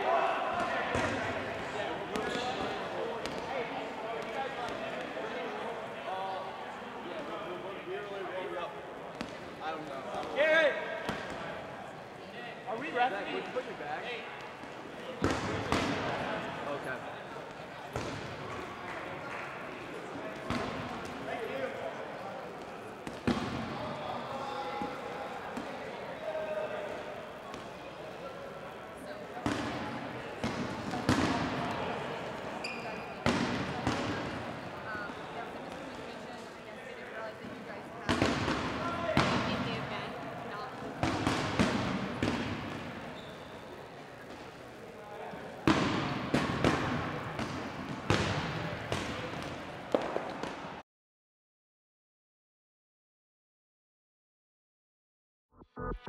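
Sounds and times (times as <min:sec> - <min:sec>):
players chatting in echoing gym: 0:00.0 - 0:50.8.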